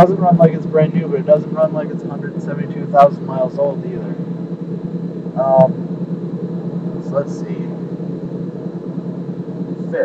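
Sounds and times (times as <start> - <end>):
man saying um: 0.0 - 4.2, 5.4 - 5.8, 7.0 - 7.8.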